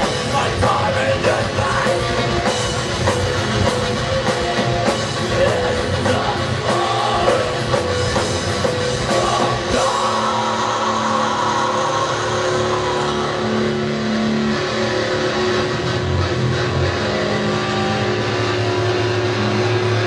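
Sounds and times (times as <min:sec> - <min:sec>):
bass guitar notes: 0:00.0 - 0:20.0
distorted electric guitar: 0:00.0 - 0:20.0.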